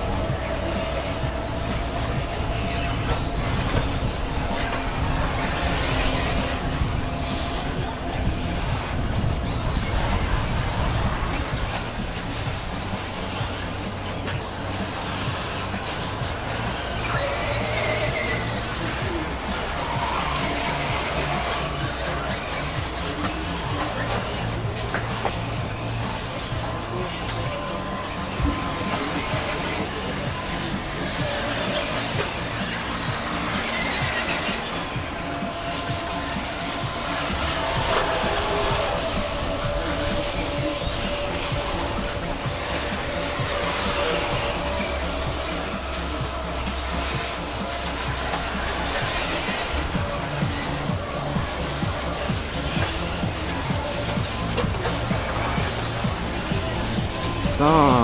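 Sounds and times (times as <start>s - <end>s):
model buggy engines revving: 0.0s - 58.0s
music over a loudspeaker: 0.0s - 58.0s.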